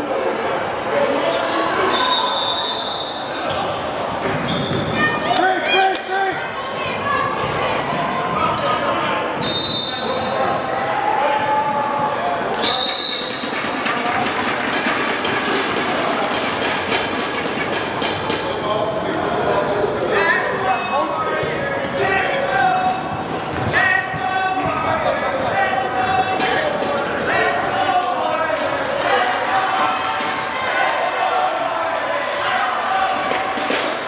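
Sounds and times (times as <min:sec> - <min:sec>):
spectators' voices and shouts: 0:00.0 - 0:34.0
referee's whistle blast: 0:01.9 - 0:03.4, 0:09.4 - 0:10.2, 0:12.6 - 0:13.5.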